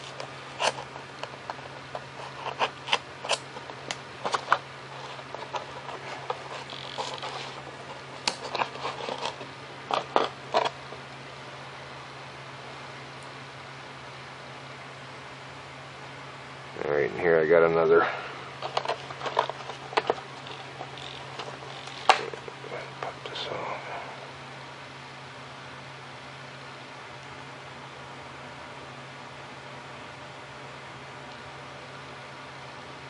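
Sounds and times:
plastic clicks and scrapes: 0.0 - 10.8, 18.6 - 22.6
faint steady hum: 0.0 - 33.0.

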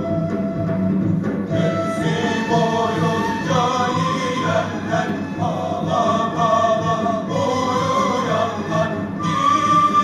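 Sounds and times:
instrumental accompaniment: 0.0 - 10.0
male chorus singing: 1.5 - 10.0.

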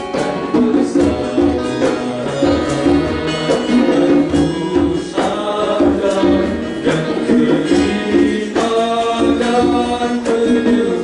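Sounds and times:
acoustic guitar: 0.0 - 11.0
male vocal group singing: 0.0 - 11.0.

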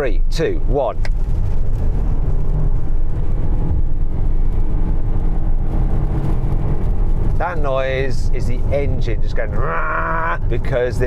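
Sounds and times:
car engine droning at full throttle: 0.0 - 11.0.

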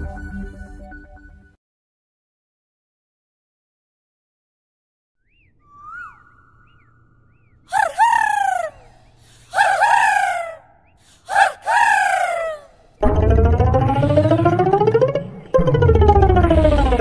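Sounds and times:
animal calling loudly: 7.7 - 12.8.

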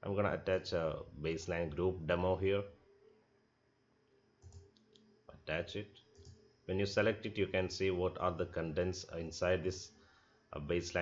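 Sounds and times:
faint room hum: 0.0 - 11.0
soft clicks: 4.0 - 5.1, 6.0 - 6.4.

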